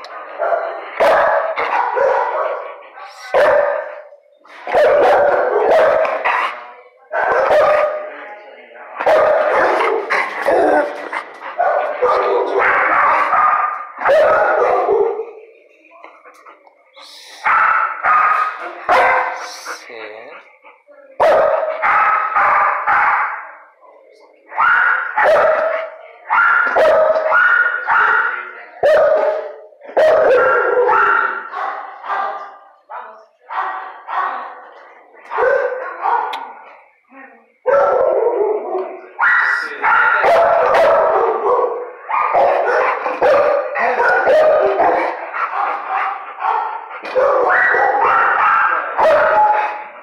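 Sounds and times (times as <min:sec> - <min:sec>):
dog barking: 0:00.0 - 0:08.1, 0:09.0 - 0:11.0, 0:11.6 - 0:15.4, 0:17.4 - 0:19.6, 0:21.2 - 0:23.5, 0:24.6 - 0:34.5, 0:35.3 - 0:36.5, 0:37.7 - 0:49.8.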